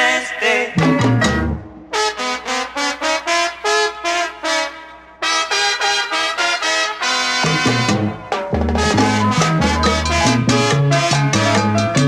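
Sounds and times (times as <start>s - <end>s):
bass and rhythm section: 0.8s - 2.2s, 7.1s - 12.0s
salsa horn section: 1.0s - 12.0s.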